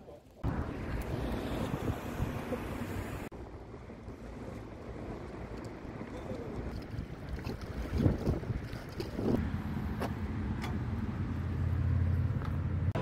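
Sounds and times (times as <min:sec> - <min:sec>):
wind buffeting microphone: 0:00.4 - 0:09.4.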